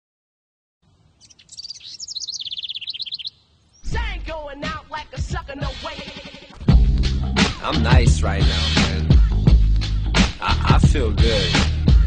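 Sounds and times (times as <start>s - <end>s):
birds chirping: 0.9s - 4.0s
hip-hop track with heavy bass: 3.9s - 12.0s.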